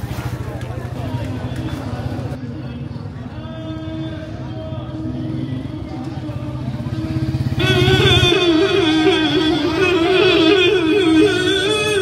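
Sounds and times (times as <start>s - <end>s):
people talking: 0.0s - 12.0s
vehicle engine rumble: 0.0s - 12.0s
loud singing with music: 1.0s - 12.0s.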